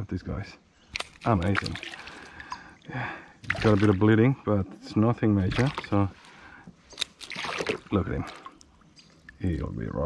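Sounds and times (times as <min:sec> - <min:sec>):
water splashing and sloshing: 0:00.8 - 0:09.7.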